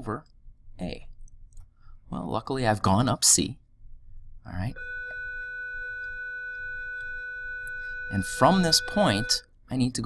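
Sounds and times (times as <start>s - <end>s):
steady electronic whine: 4.8s - 9.4s.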